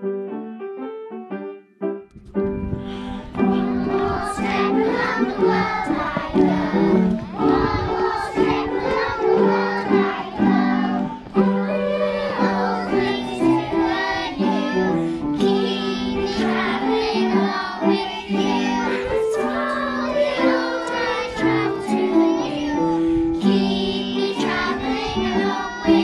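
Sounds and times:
instrumental accompaniment: 0.0s - 26.0s
children singing: 3.2s - 26.0s.

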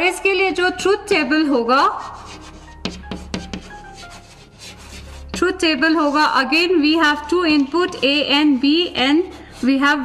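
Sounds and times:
chalk scratching on blackboard: 1.5s - 10.0s
chalk tapping on blackboard: 2.0s - 6.5s, 7.3s - 10.0s.

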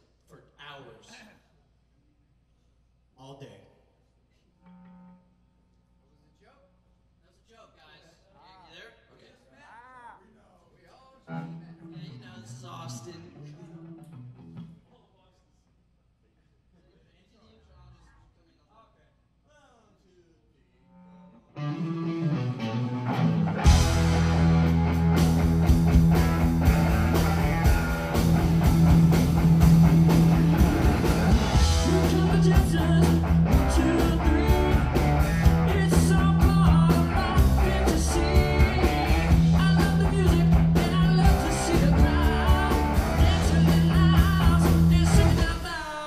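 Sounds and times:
live rock band playing: 21.6s - 46.0s.

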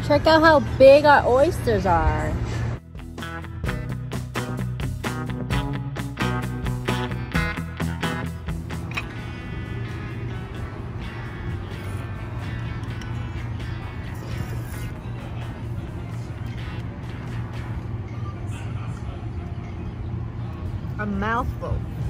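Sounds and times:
continuous low rumble: 0.0s - 22.0s
background music with guitar: 2.8s - 19.5s.

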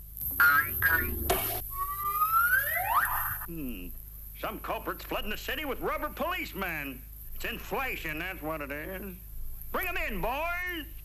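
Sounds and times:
slide whistle glides: 1.6s - 3.5s.

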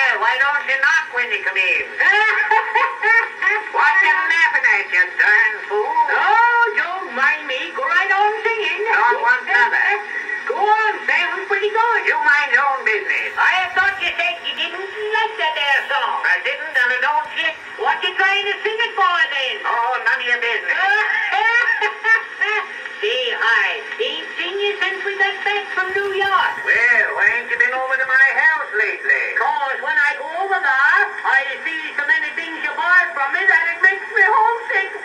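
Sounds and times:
men talking on old phonograph record: 0.0s - 35.0s
men snickering laughter: 21.2s - 22.8s.

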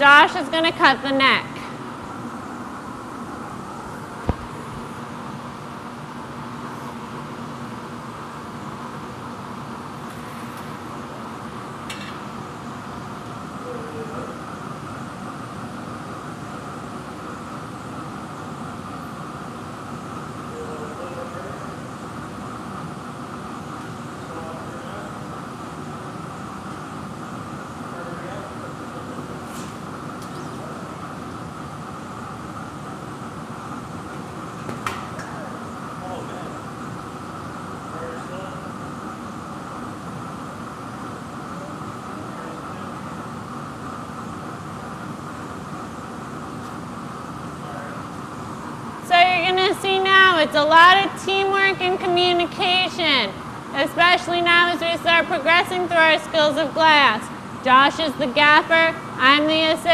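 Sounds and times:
furnace burners roaring: 0.0s - 59.9s.

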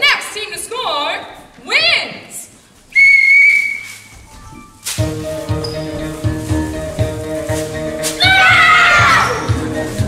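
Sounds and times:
referee's whistle: 3.0s - 4.2s.

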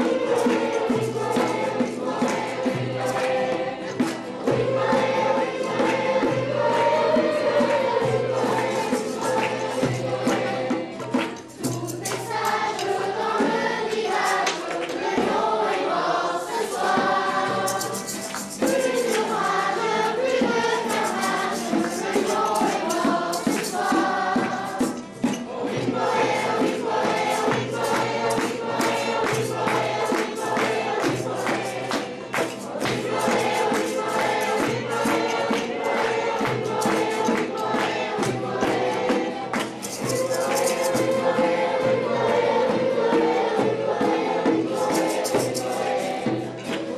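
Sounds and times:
children's choir singing: 0.0s - 46.9s
instrumental accompaniment: 0.0s - 46.9s
steady percussive beat: 0.0s - 46.9s
strummed acoustic guitar: 0.0s - 46.9s.

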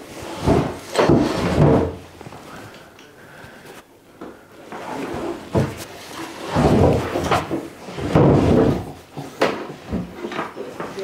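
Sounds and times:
cable scraping over floorboards: 0.0s - 2.6s, 4.6s - 11.0s.

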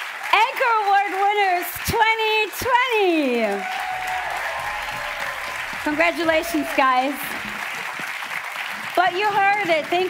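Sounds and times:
audience applauding: 3.4s - 10.0s.

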